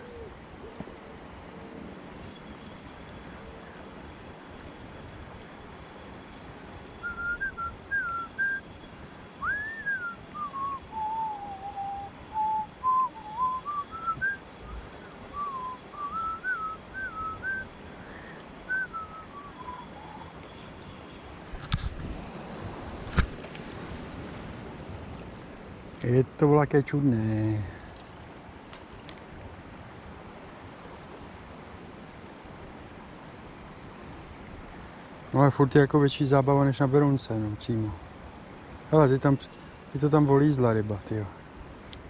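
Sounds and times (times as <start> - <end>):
river water rushing: 0.0 - 41.9
person whistling a tune: 7.0 - 8.6, 9.4 - 14.4, 15.3 - 17.6, 18.7 - 20.1.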